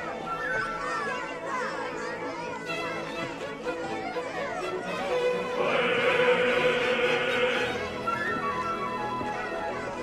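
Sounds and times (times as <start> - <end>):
excited children's voices: 0.0 - 8.4, 9.2 - 10.0
crowd chattering and calling out: 0.0 - 10.0
faint music: 0.0 - 10.0.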